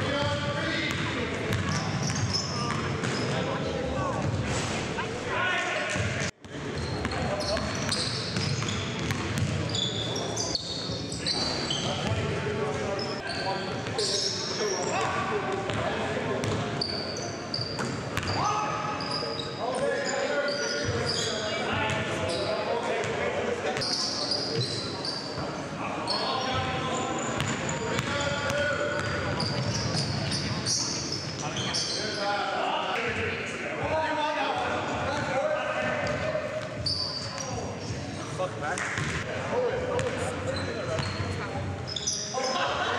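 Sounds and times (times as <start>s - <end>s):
sneakers squeaking: 0.0s - 5.0s, 6.0s - 22.7s, 23.7s - 32.4s, 35.9s - 39.2s, 39.9s - 42.8s.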